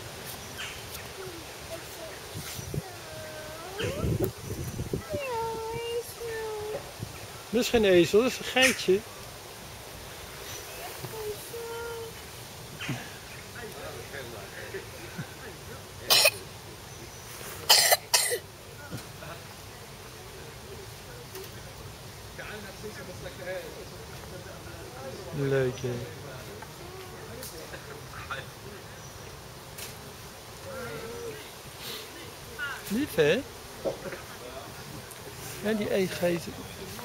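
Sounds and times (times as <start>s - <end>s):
short sharp coughs: 17.7s - 18.4s.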